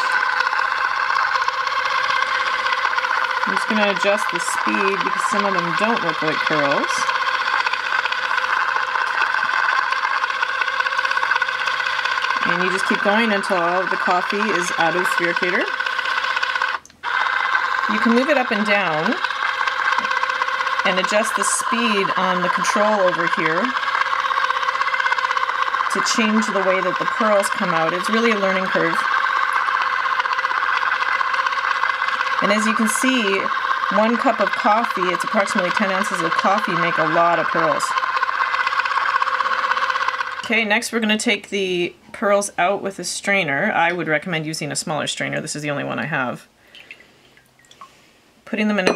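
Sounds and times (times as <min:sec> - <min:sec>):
small electric motor whining: 0:00.0 - 0:40.6.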